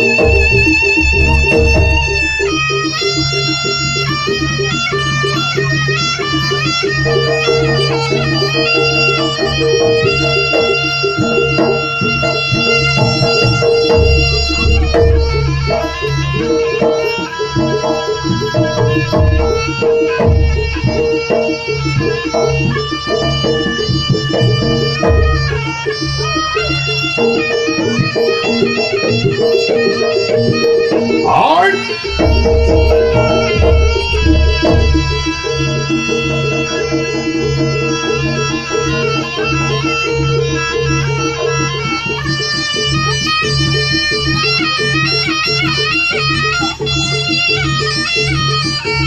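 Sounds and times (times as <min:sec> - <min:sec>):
steady low drone tone: 0:00.0 - 0:03.4, 0:31.8 - 0:36.6
hand drums beating: 0:00.0 - 0:04.0, 0:07.1 - 0:40.3
gamelan percussion pattern: 0:00.0 - 0:48.5
reedy shawm melody: 0:00.0 - 0:49.0.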